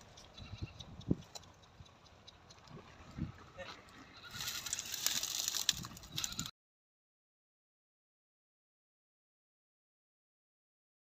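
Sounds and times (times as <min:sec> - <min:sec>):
faint rustling of leaves: 0:00.0 - 0:06.5.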